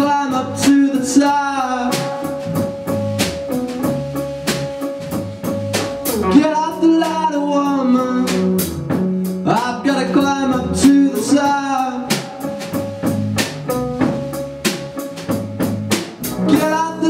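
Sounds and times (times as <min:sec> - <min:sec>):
man singing long notes: 0:00.0 - 0:02.3, 0:06.2 - 0:08.5, 0:09.5 - 0:12.5, 0:16.5 - 0:17.0
drum kit with cymbal and snare: 0:00.0 - 0:17.0
electric guitar: 0:00.0 - 0:17.0.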